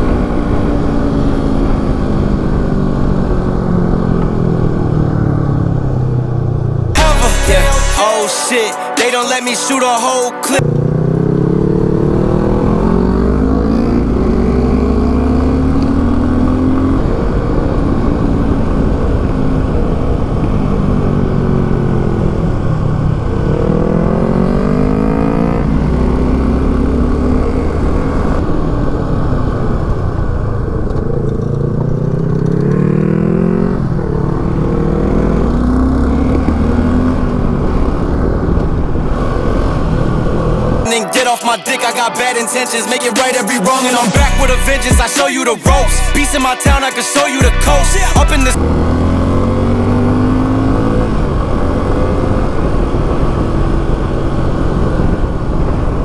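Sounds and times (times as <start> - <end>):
motorcycle engine revving: 10.6 - 40.8, 47.9 - 56.0.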